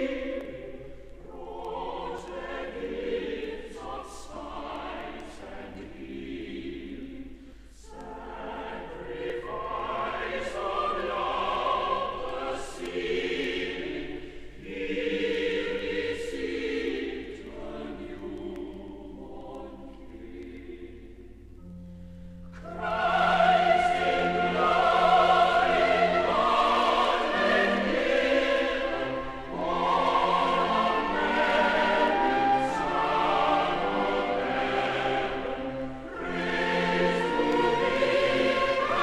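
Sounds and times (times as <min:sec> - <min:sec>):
choir singing a carol: 0:00.0 - 0:39.0
singers breathing: 0:07.4 - 0:07.8, 0:14.2 - 0:14.6.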